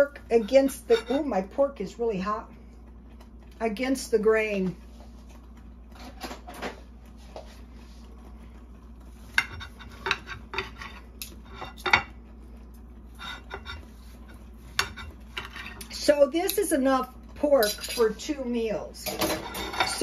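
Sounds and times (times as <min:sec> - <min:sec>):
knife and fork scraping plate: 0:00.1 - 0:01.4, 0:09.3 - 0:12.1, 0:13.1 - 0:16.0, 0:19.1 - 0:20.0.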